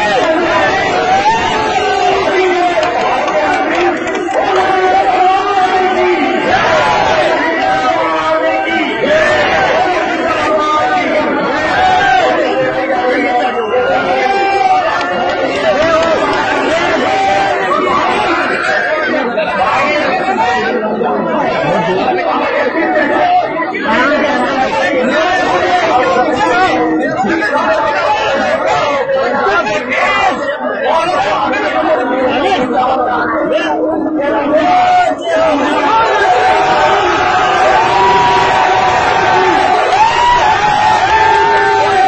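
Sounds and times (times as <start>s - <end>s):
crowd chatter: 0.0s - 42.0s.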